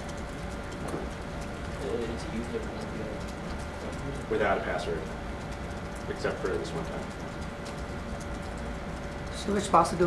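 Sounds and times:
laptop keys typing: 0:00.0 - 0:10.0.

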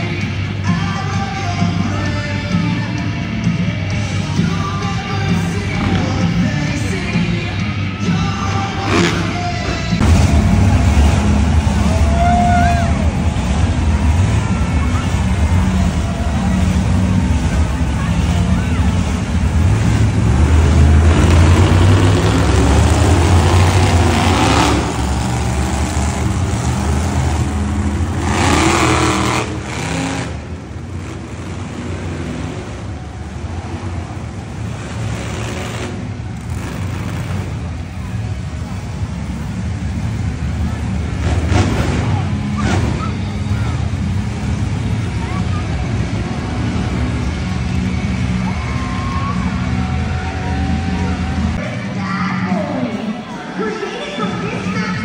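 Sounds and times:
vehicle engines revving: 0:00.0 - 0:55.0
amplified voice: 0:51.6 - 0:55.0.

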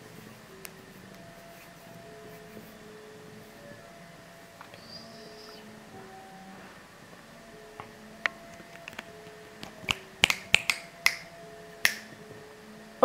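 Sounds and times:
low background noise: 0:00.0 - 0:13.0.

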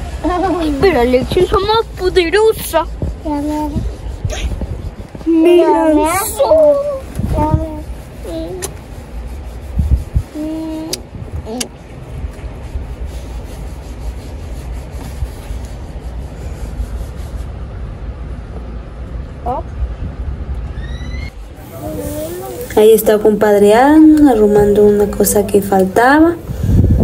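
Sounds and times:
car cabin rumble: 0:00.0 - 0:08.8
child vocal sounds: 0:05.2 - 0:08.7, 0:10.3 - 0:11.8, 0:21.7 - 0:22.8.

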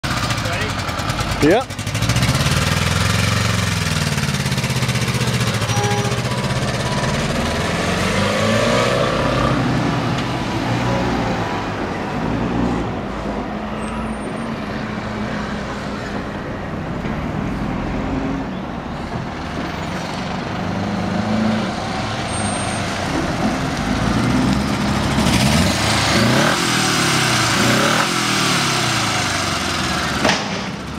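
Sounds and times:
motorcycle engine revving: 0:00.0 - 0:10.2, 0:23.1 - 0:30.9.

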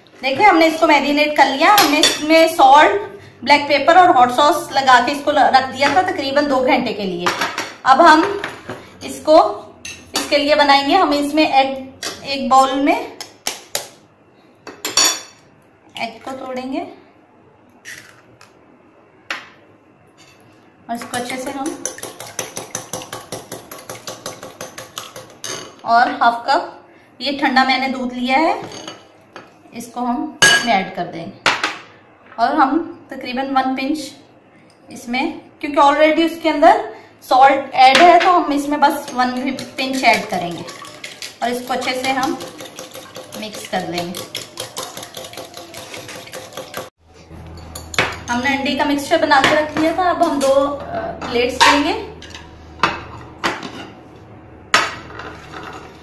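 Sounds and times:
whisk clicking against glass bowl: 0:21.5 - 0:25.4, 0:39.1 - 0:46.9.

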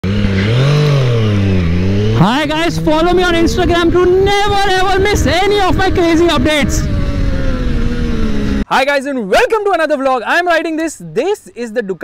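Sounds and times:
motorcycle engine revving: 0:00.0 - 0:08.7.

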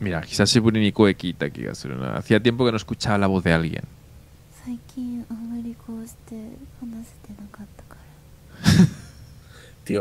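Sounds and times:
woman whispering: 0:04.6 - 0:08.2
man snorting with laughter: 0:08.6 - 0:09.3.

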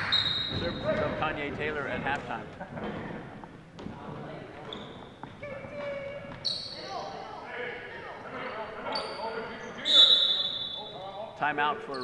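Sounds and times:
referee's whistle: 0:00.0 - 0:00.8, 0:09.8 - 0:11.0
shoe squeaks: 0:00.0 - 0:01.2, 0:04.6 - 0:07.3, 0:08.4 - 0:11.2
echoing voices: 0:00.0 - 0:12.0.

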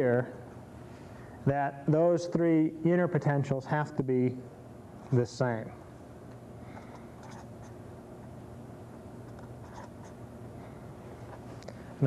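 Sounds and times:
steady low hum: 0:00.0 - 0:12.0
marker pen writing on paper: 0:07.2 - 0:07.8, 0:09.2 - 0:10.2.

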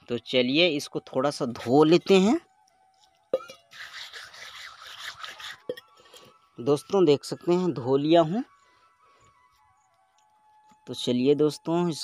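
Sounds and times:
wet scrubbing on stone: 0:03.7 - 0:05.8.

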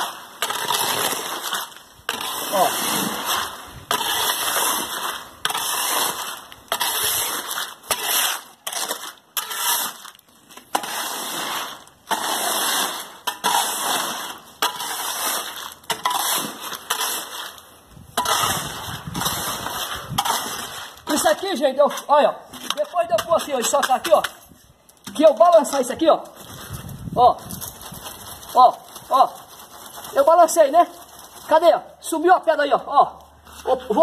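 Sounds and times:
wet concrete being stamped: 0:22.6 - 0:24.4.

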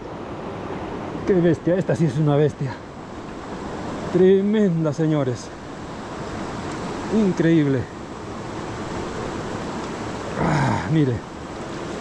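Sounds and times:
fast-flowing river rushing: 0:00.0 - 0:12.0.

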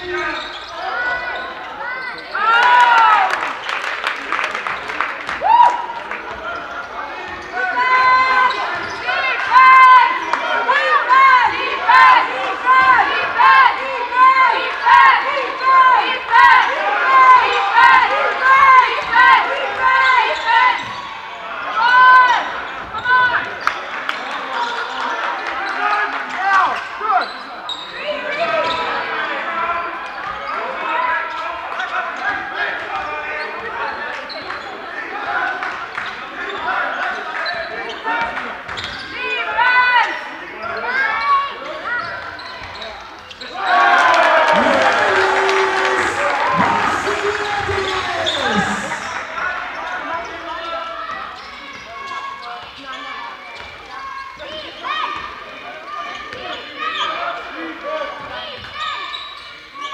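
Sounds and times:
crowd cheering and shouting: 0:00.0 - 0:03.8, 0:05.2 - 0:23.5, 0:43.5 - 0:52.5
echoing shouts: 0:04.9 - 0:23.6, 0:43.4 - 0:53.0.

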